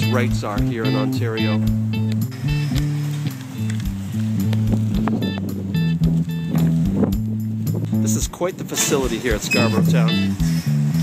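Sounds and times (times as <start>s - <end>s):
background music with beat: 0.0s - 11.0s
high keyboard notes: 0.0s - 11.0s.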